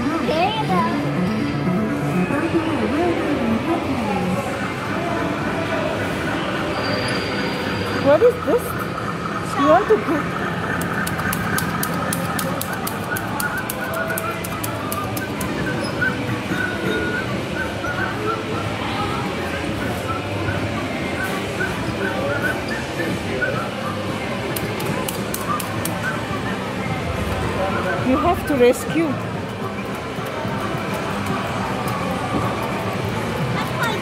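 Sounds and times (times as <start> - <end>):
indistinct voices: 0.0 - 34.0.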